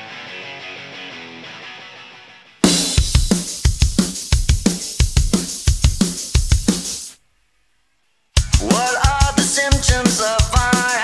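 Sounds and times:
drum kit punk beat: 2.6 - 7.2, 8.4 - 11.0.

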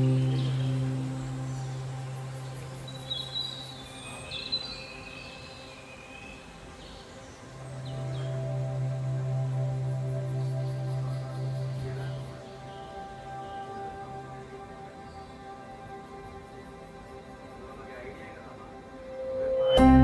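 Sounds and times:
ambient background music: 0.0 - 20.0.

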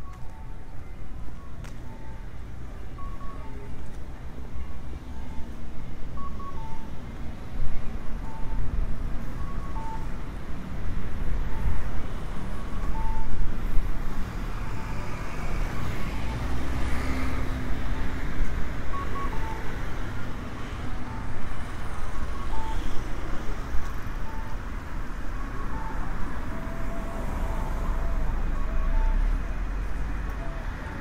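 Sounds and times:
short high-pitched beeps: 3.0 - 3.6
cars passing: 6.5 - 31.0.

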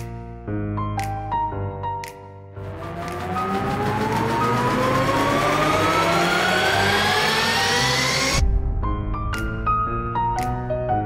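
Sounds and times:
roller coaster launch whine: 2.7 - 8.4.

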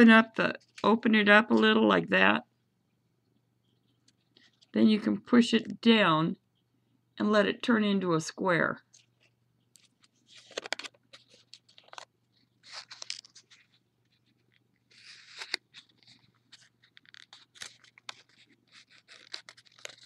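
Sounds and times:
paper crinkling and rustling: 9.0 - 20.0.

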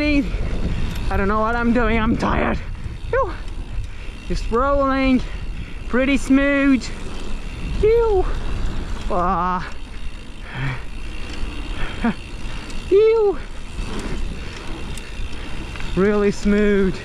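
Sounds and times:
wind on microphone: 0.0 - 5.9, 6.8 - 9.2
bike tyres rolling on gravel: 0.0 - 17.0.

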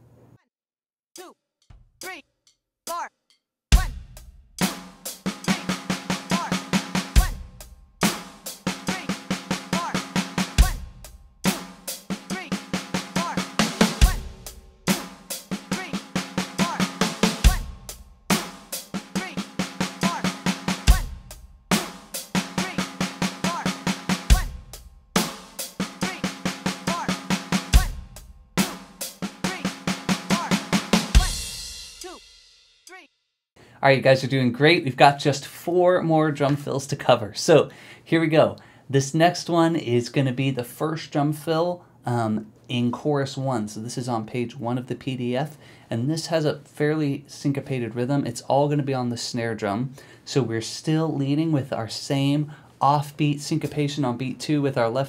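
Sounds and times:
electronic drum kit rock groove: 3.7 - 32.4.

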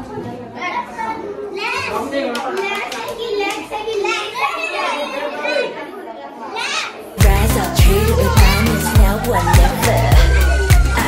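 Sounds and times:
children shouting and chattering: 0.0 - 11.0.

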